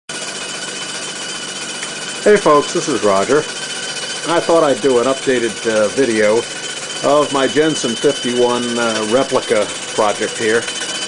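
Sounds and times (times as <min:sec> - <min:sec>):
steam engine running: 0:00.1 - 0:11.0
faint high whine: 0:04.2 - 0:10.6.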